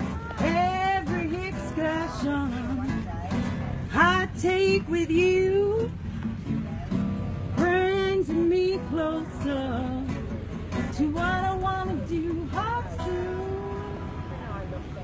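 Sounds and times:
acoustic guitar: 0.0 - 15.0.

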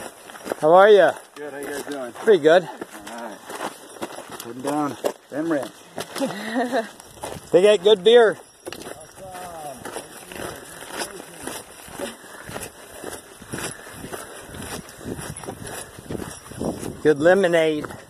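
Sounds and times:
footsteps crunching on gravel: 0.0 - 18.0.

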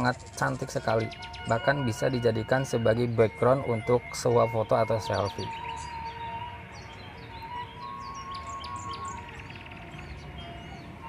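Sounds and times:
bird trill: 0.0 - 11.0
birds chirping: 0.0 - 11.0
faint background music: 0.0 - 11.0.

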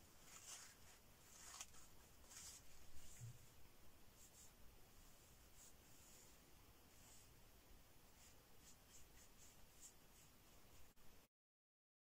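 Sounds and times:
paintbrush strokes on paper: 0.0 - 11.2.

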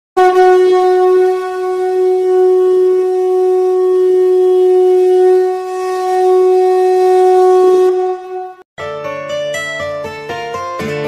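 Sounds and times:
conch shell blown: 0.2 - 8.7.

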